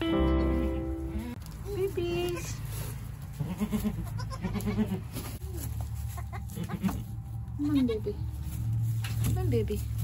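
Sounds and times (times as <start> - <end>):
goats bleating: 3.4 - 5.1, 6.1 - 7.0.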